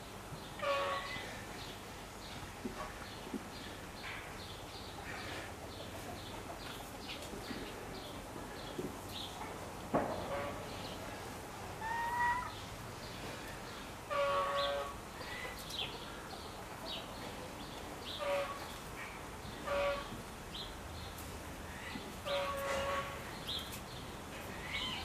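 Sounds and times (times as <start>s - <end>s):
small birds chirping: 20.5s - 25.0s.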